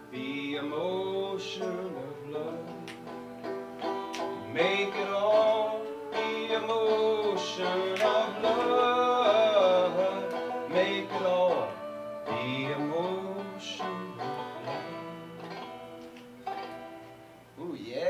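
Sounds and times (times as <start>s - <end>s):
bowed strings: 0.0s - 17.6s
banjo: 0.0s - 17.7s
voices singing together: 4.2s - 15.7s.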